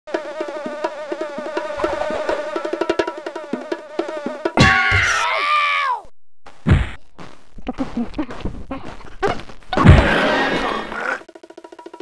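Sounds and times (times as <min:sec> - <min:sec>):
housefly buzzing: 0:00.1 - 0:04.6.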